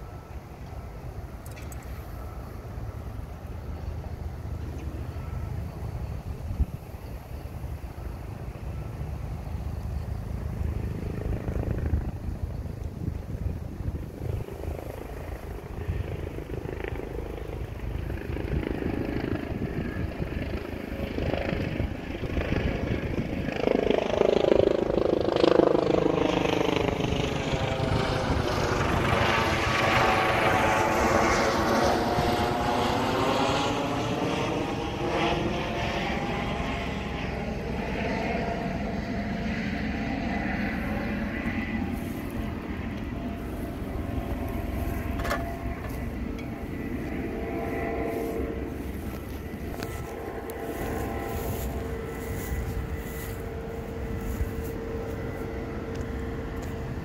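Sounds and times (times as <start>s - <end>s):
airplane passing overhead: 0.0s - 57.0s
steady low rumble: 0.0s - 57.0s.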